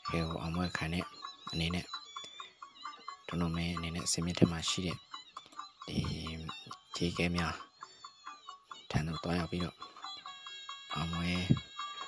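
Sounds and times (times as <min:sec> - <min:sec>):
man speaking: 0:00.0 - 0:01.9, 0:03.3 - 0:05.0, 0:05.9 - 0:07.6, 0:08.9 - 0:09.8, 0:10.9 - 0:11.6.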